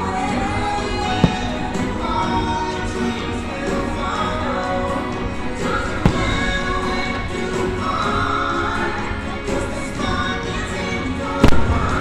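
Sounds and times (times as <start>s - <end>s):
music playing: 0.0s - 12.0s.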